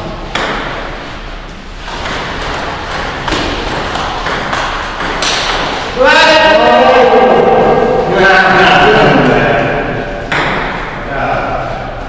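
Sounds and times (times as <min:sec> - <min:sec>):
man shouting: 0:06.0 - 0:09.6.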